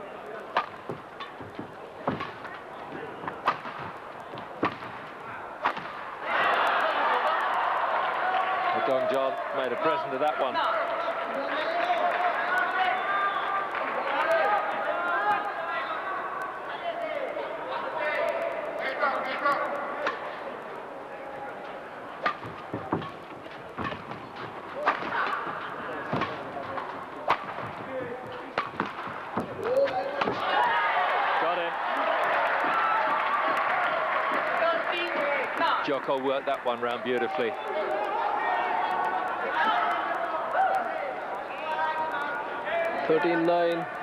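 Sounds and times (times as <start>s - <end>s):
crowd chatter: 0.0s - 44.0s
crowd noise: 0.0s - 44.0s
racket striking shuttlecock: 0.5s - 6.1s, 22.2s - 30.5s.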